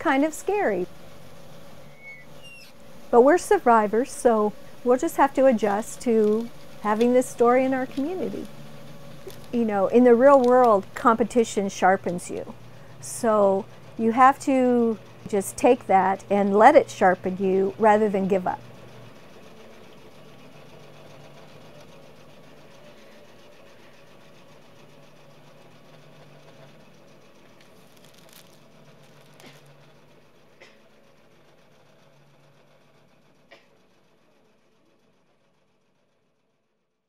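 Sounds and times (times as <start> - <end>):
quilting machine humming: 0.0 - 36.4.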